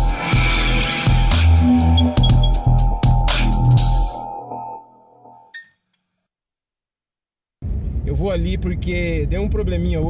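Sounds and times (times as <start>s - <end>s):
electronic intro music: 0.9s - 3.0s.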